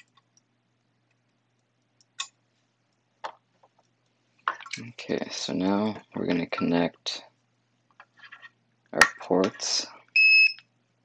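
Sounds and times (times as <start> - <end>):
man speaking: 4.8 - 7.3, 9.0 - 10.0.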